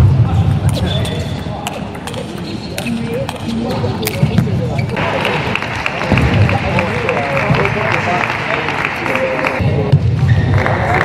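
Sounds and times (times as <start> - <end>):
crowd murmur: 0.2 - 11.0
table tennis ball ticking: 0.7 - 4.4.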